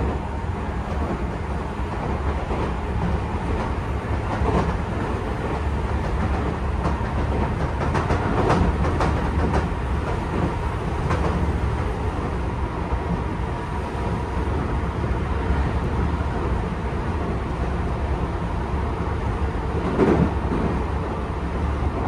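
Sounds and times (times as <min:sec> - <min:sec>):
train wheels rumbling on rail: 0:00.0 - 0:22.0.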